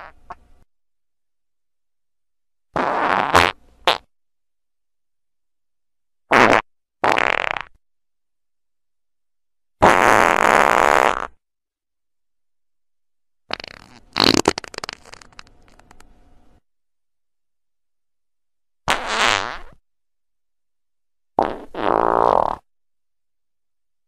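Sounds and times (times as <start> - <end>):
fart sounds: 0.0 - 0.4, 2.7 - 4.1, 6.3 - 7.8, 9.8 - 11.4, 13.5 - 16.0, 18.9 - 19.8, 21.4 - 22.7.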